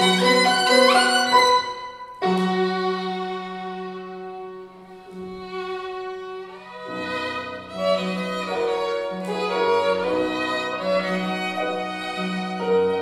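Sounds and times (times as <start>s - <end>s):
piano accompaniment: 0.0s - 13.0s
solo violin: 0.0s - 13.0s.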